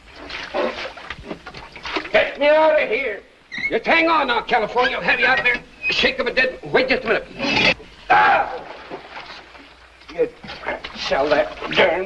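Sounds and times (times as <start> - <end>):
man's long drawn-out cry: 8.1 - 8.7.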